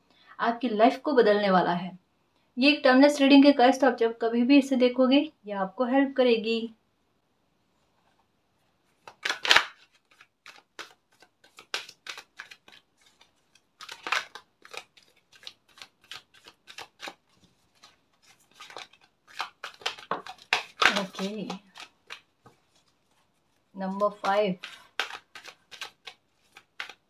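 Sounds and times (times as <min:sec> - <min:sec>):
cards being shuffled: 0:08.9 - 0:27.0.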